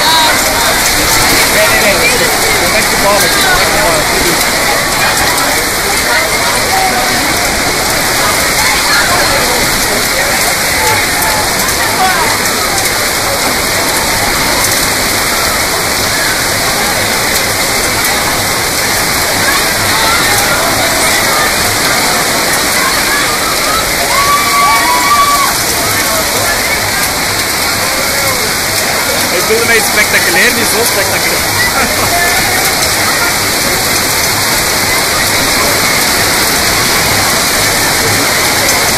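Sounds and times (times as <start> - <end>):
faint voices calling out: 0.0 - 38.9
torrential rain and wind: 0.0 - 38.9.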